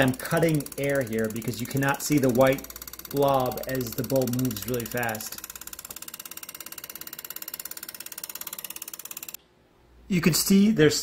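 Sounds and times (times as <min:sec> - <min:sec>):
lathe tool chattering on wood: 0:00.0 - 0:09.4.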